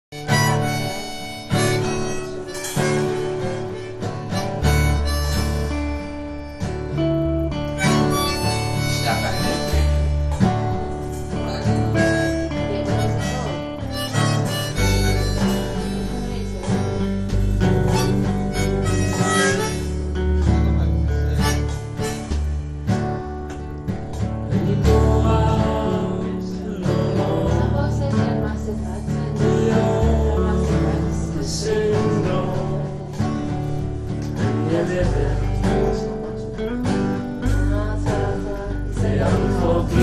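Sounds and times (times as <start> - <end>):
guitar: 0.0 - 40.0
harmonica melody: 0.1 - 23.7
deep bass notes: 0.4 - 40.0.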